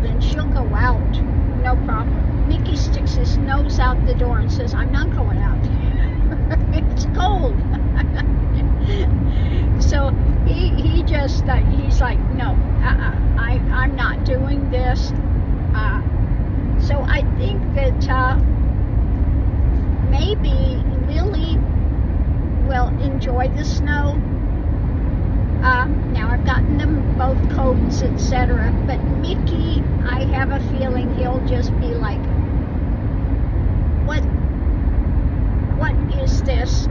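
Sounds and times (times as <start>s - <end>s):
woman talking: 0.0s - 15.2s, 15.8s - 16.2s, 16.8s - 18.4s, 20.1s - 21.6s, 22.6s - 24.2s, 25.6s - 32.3s, 34.1s - 34.3s, 35.7s - 36.9s
car road and engine noise: 0.0s - 36.9s.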